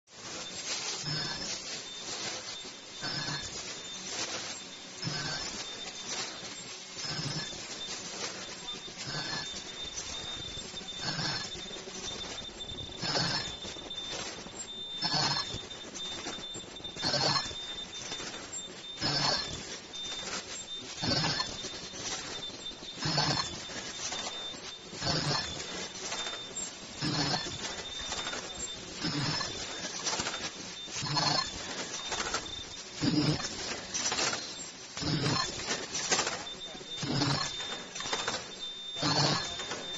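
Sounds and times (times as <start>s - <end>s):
steady high whine: 0.0s - 39.9s
mechanical bursts of machine: 0.1s - 39.9s.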